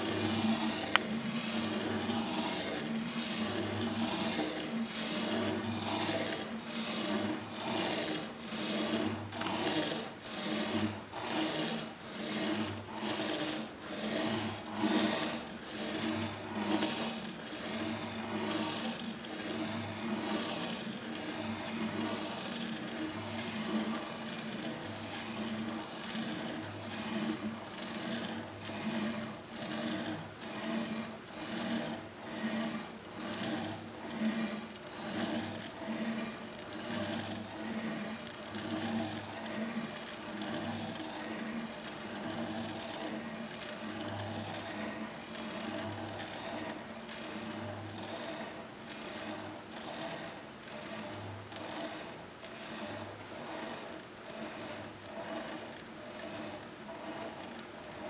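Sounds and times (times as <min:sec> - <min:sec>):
pen scratching across paper: 0:00.0 - 0:58.0.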